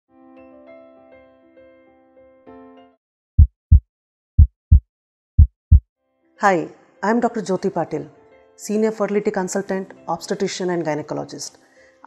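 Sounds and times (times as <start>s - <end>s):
heartbeat double thumps: 3.4s - 3.8s, 4.4s - 4.8s, 5.4s - 5.8s.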